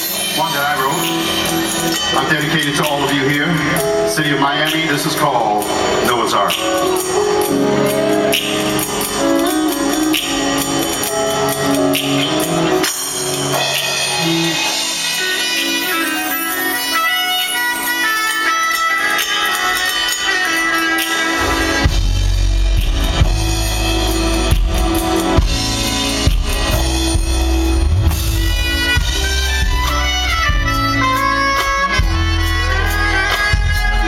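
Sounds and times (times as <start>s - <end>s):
smooth jazz band playing: 0.0s - 34.0s
trumpet melody: 6.7s - 34.0s
electric bass: 21.4s - 34.0s.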